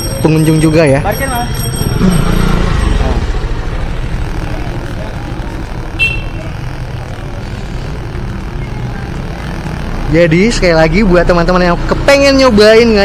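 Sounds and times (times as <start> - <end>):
street traffic rumble: 0.0 - 13.0.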